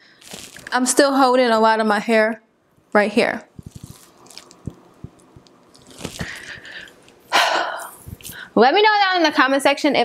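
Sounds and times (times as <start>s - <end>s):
clothing rustling on microphone: 3.5s - 7.2s.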